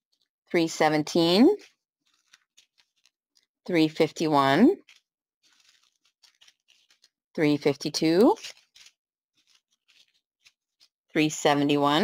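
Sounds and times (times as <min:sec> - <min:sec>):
plastic bags crinkling: 0:00.1 - 0:00.4, 0:01.2 - 0:04.0, 0:04.8 - 0:11.2.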